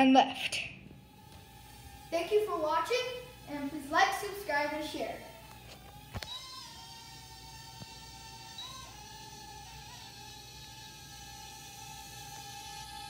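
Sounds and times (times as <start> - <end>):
quadcopter motors whining: 0.3 - 13.0.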